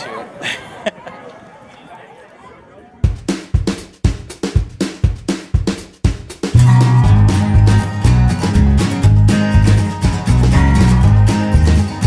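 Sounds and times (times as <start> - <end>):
faint voices: 0.0 - 3.3
background music with drum beat: 3.0 - 12.0.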